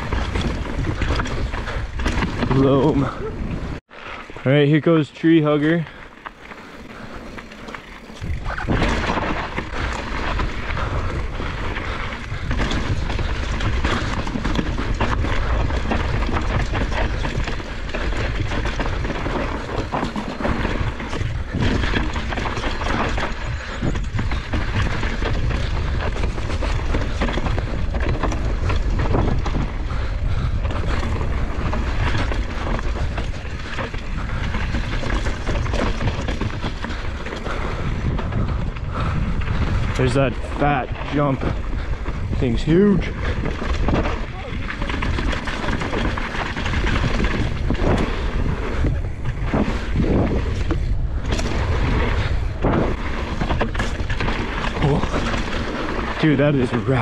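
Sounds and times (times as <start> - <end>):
wind buffeting microphone: 0.0 - 3.9, 4.6 - 57.0
bike rattling and knocking: 0.0 - 57.0
tyres rolling over gravel: 0.0 - 57.0.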